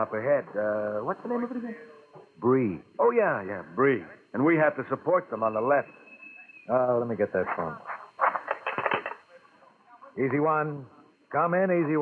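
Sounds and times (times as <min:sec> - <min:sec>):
quiet hiss: 0:00.0 - 0:12.0.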